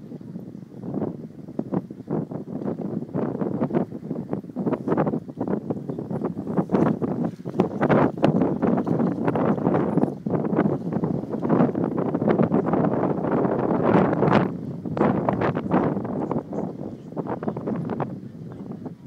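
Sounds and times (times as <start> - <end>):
wind buffeting microphone: 0.0 - 19.0.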